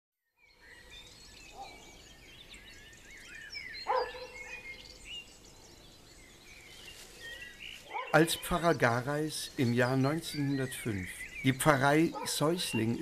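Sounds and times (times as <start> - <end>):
small birds chirping: 0.4 - 13.0.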